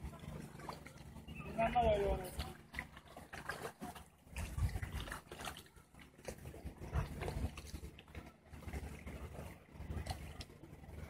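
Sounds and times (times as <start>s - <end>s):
low rumbling and buffeting: 0.0s - 11.0s.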